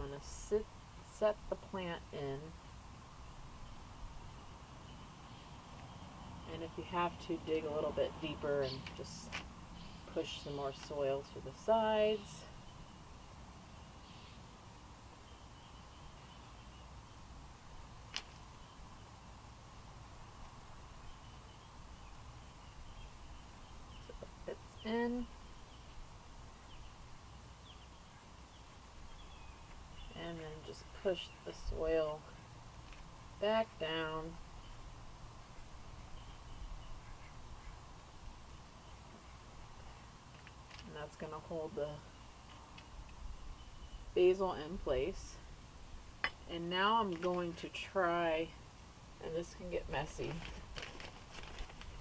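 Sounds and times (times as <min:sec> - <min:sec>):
bird chirping faintly: 0:33.8 - 0:37.9.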